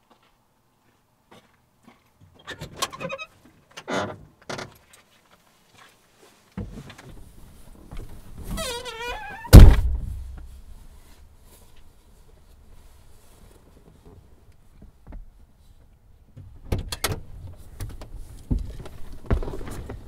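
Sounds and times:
car door squeaking: 0:08.5 - 0:09.9
car door slamming: 0:09.5 - 0:10.5.

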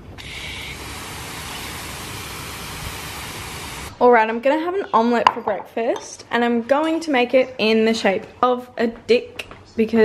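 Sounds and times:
hose nozzle spraying water: 0:00.2 - 0:03.9.

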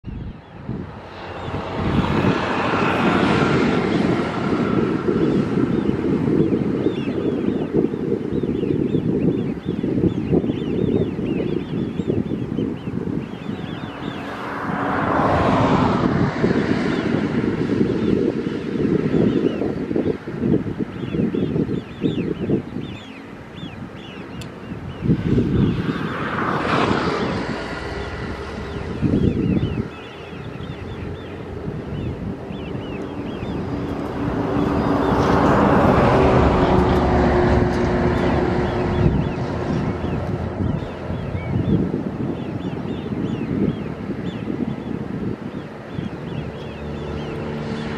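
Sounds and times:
wind buffeting microphone: 0:00.0 - 0:47.9
broad rushing sound: 0:00.1 - 0:06.8, 0:12.1 - 0:19.2.

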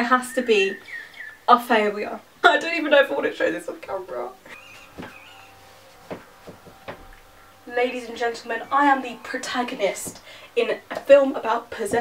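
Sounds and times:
soft footsteps on a floor: 0:05.0 - 0:07.2.

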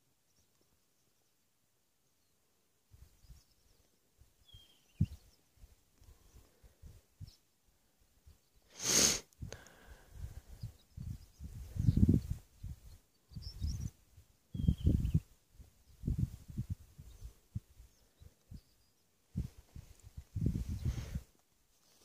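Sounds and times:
wind buffeting microphone: 0:10.1 - 0:13.9, 0:14.5 - 0:17.8, 0:19.3 - 0:21.2.

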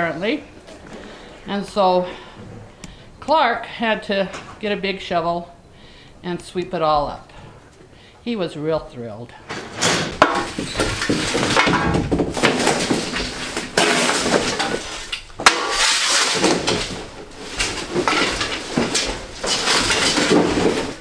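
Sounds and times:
debris clattering and scraping: 0:09.5 - 0:21.0.

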